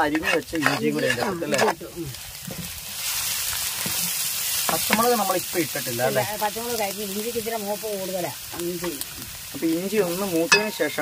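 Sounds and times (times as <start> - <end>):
ladle stirring in pan: 0.0 - 7.0, 8.3 - 11.0
ginger sizzling in oil: 0.0 - 11.0.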